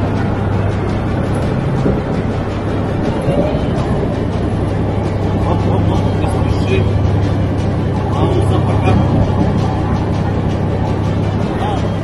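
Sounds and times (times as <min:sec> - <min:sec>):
tank engine droning: 0:00.0 - 0:12.0.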